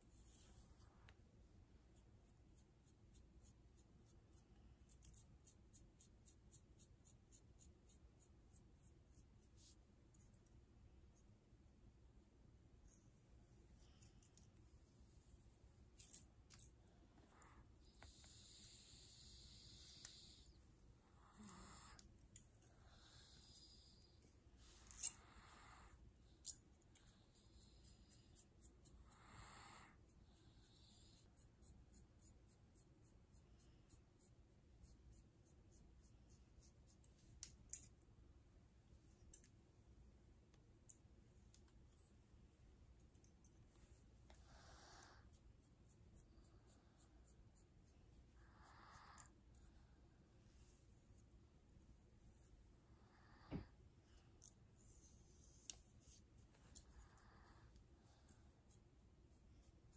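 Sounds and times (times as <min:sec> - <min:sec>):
fingernails and comb scratching hair: 0:12.9 - 0:38.0.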